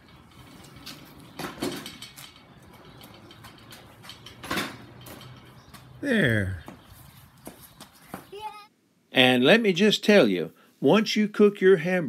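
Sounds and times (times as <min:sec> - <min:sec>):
child footsteps on concrete: 0:04.9 - 0:06.0, 0:06.6 - 0:08.6
high-pitched child voice: 0:08.3 - 0:08.7.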